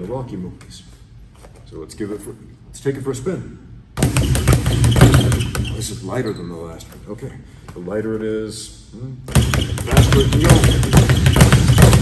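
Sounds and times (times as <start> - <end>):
speed bag being punched: 4.0 - 5.9, 9.3 - 12.0.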